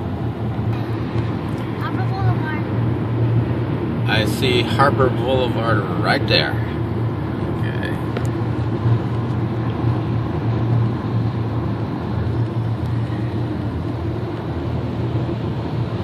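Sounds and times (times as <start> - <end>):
car road noise drone: 0.0 - 16.0.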